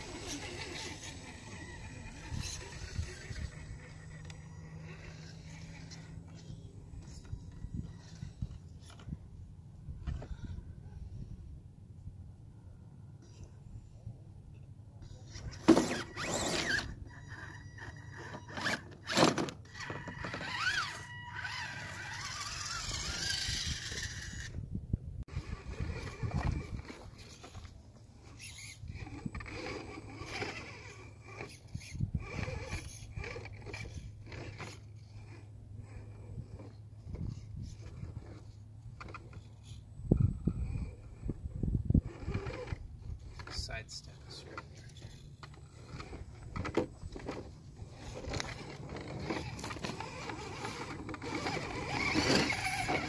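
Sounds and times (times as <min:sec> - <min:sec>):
small electric drivetrain whining: 0:00.0 - 0:09.3, 0:09.9 - 0:11.4, 0:15.0 - 0:24.7, 0:25.3 - 0:53.0
tyres scraping over rock: 0:44.3 - 0:53.0.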